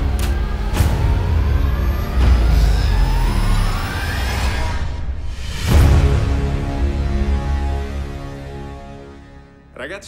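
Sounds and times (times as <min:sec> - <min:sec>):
rising tone: 0:00.0 - 0:05.7.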